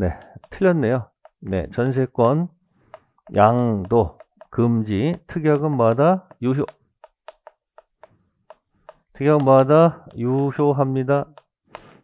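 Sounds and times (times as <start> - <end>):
chalk tapping on chalkboard: 0.0 - 10.2, 11.2 - 12.0.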